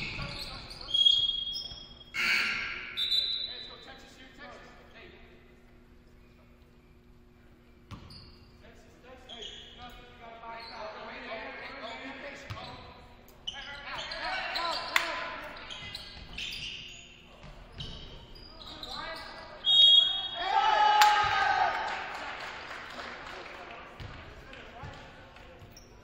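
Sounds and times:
sneakers squeaking: 0.0 - 4.2, 6.1 - 20.6, 23.9 - 26.0
loud shout: 19.9 - 22.4.

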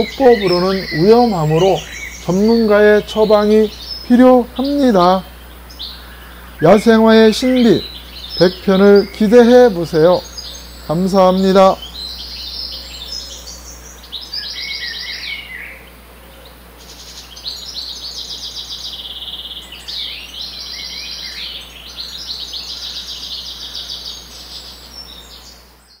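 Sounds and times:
songbird trilling: 0.0 - 26.0.

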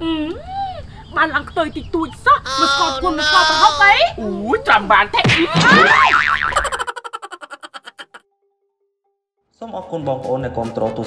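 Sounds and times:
cartoon boing sound effect: 5.6 - 6.8.

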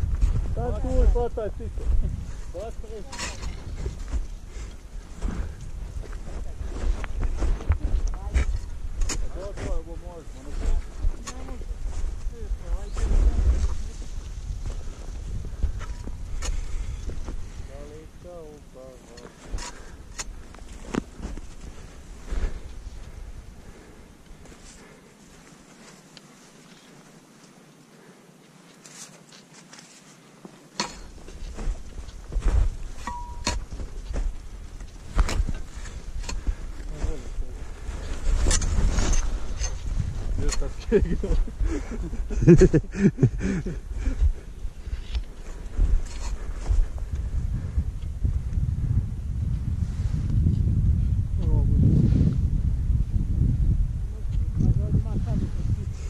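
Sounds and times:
wind buffeting microphone: 0.0 - 18.5, 19.5 - 24.2, 31.1 - 56.0
person's voice: 0.6 - 1.9, 54.1 - 55.9.

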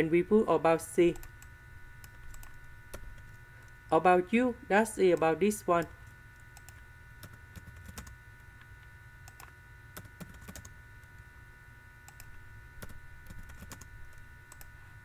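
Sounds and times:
keyboard keys clicking: 9.3 - 10.7.

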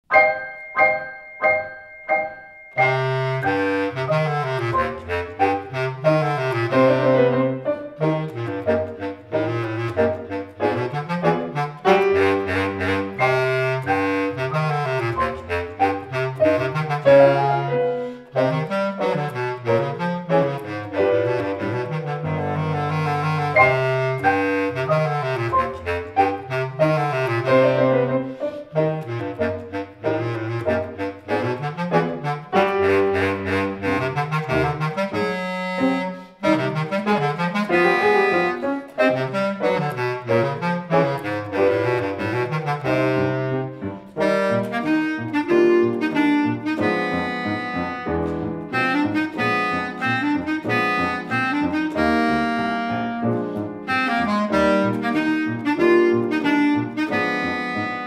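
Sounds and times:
bass clarinet and piano march: 0.0 - 58.0.

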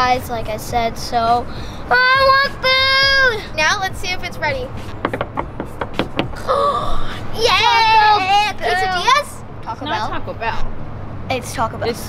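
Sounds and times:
girl's excited vocal sound: 1.9 - 3.7, 6.4 - 9.4
hands slapping window and sofa: 4.8 - 6.4.

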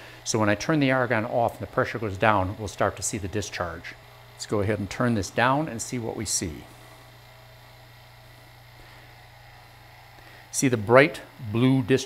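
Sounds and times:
vacuum pump running: 0.0 - 12.0.

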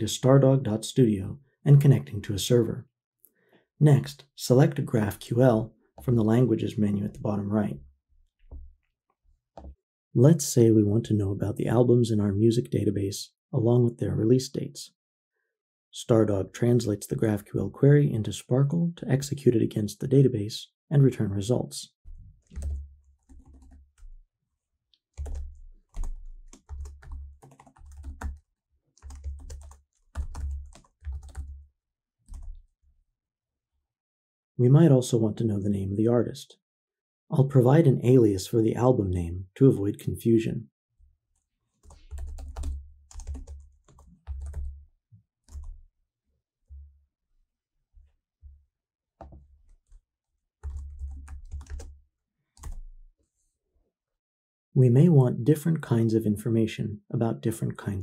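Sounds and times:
typing on computer keyboard: 22.4 - 24.2, 25.2 - 31.6, 32.3 - 32.6, 41.8 - 44.8, 45.5 - 45.8, 50.6 - 51.9, 52.6 - 52.9.

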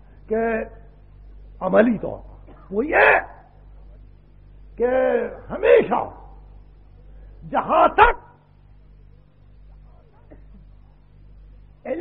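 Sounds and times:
tape hiss and low hum: 0.0 - 12.0
man speaking: 0.2 - 0.9, 1.6 - 3.5, 4.8 - 6.4, 7.4 - 8.3.

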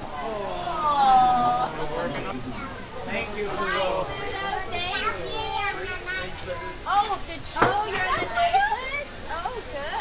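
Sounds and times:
group chattering excitedly: 0.0 - 10.0.

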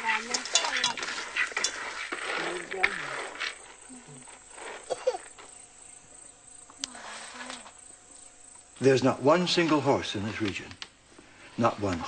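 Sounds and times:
insects buzzing: 0.0 - 12.0.

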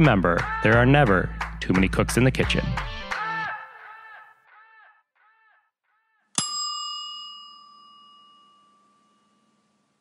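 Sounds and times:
bell-like ding: 6.4 - 10.0.

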